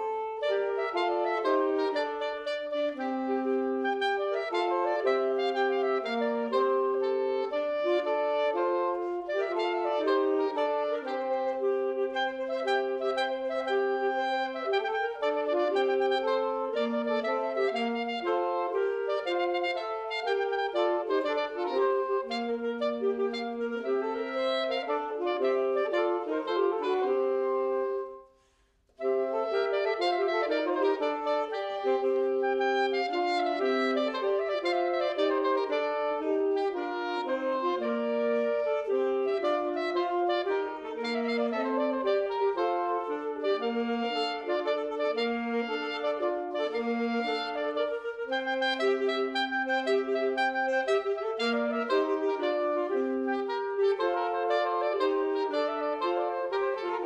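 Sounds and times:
saxophone trio playing: 0:00.0 - 0:57.0.

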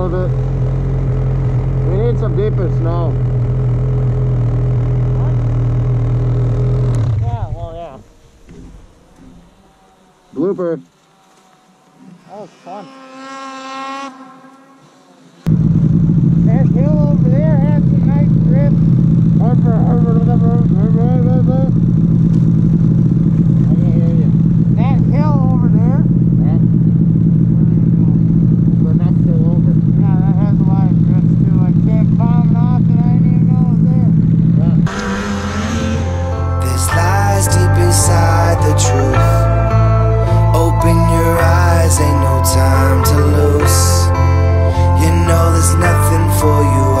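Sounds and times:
snowmobile engine running: 0:00.0 - 0:10.8, 0:11.5 - 0:47.0.

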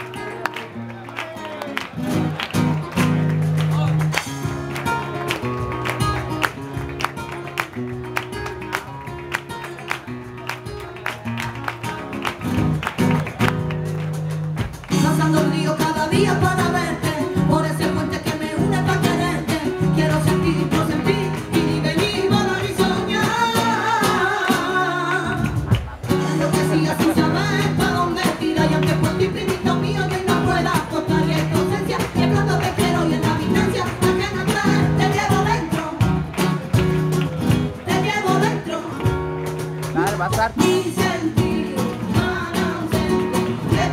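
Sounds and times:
guitar: 0:00.0 - 0:43.9
woman singing: 0:14.9 - 0:36.6, 0:37.6 - 0:39.5, 0:40.4 - 0:43.9.

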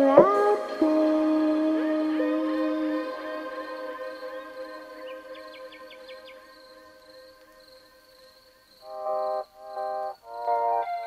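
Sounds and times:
lofi chill track held chord: 0:00.0 - 0:11.0.

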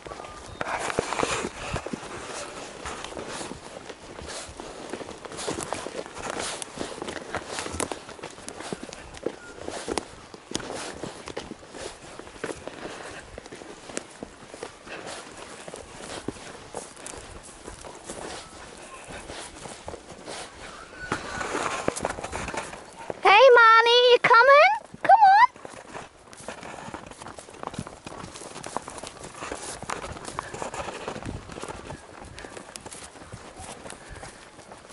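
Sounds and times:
rustling: 0:00.0 - 0:23.9, 0:24.9 - 0:34.9
horse hooves on grass: 0:00.0 - 0:34.9.

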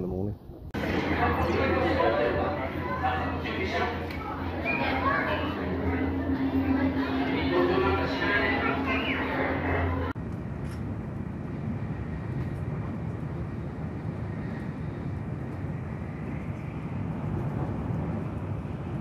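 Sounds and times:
train rumbling and rushing at speed: 0:00.7 - 0:19.0.

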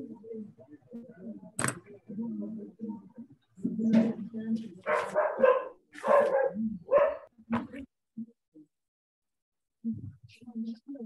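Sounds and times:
dog barking: 0:04.8 - 0:07.3.

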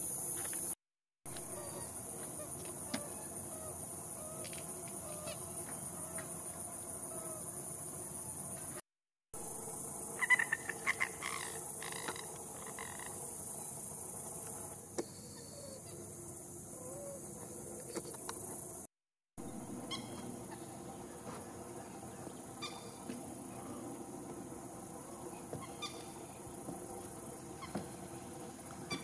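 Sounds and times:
frogs calling: 0:01.3 - 0:08.6, 0:09.5 - 0:18.8, 0:19.5 - 0:29.0
high-pitched insect drone: 0:09.4 - 0:18.9.

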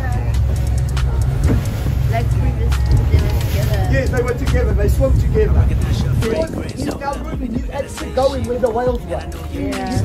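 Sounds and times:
boat engine rumble: 0:00.0 - 0:10.0
wind on microphone: 0:00.0 - 0:10.0.

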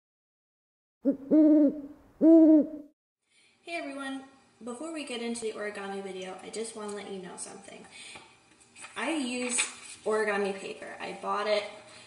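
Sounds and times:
owl hooting: 0:01.0 - 0:02.9.

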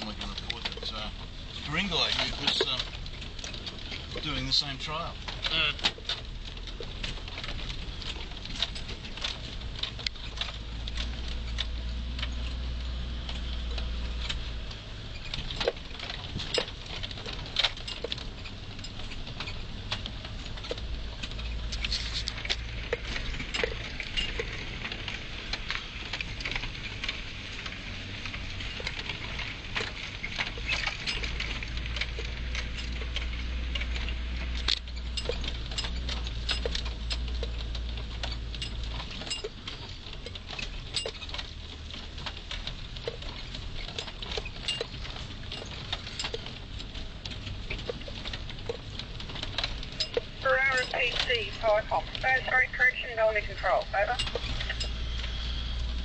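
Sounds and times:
rattling and clattering of vehicle body: 0:00.0 - 0:56.0
vehicle engine and road rumble: 0:00.0 - 0:56.0.

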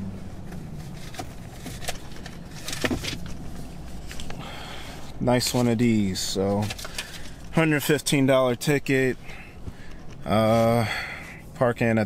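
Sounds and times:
low hum inside car: 0:00.0 - 0:12.0.

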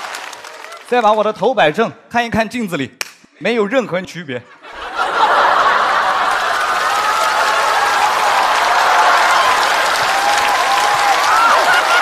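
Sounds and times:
audience applauding: 0:00.0 - 0:01.3, 0:05.0 - 0:12.0
audience laughing: 0:04.4 - 0:07.6, 0:11.3 - 0:12.0.

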